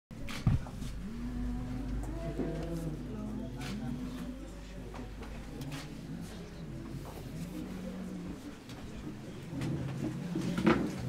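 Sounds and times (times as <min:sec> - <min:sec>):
murmur of people: 0:00.2 - 0:11.0
low held human voice: 0:00.7 - 0:10.7.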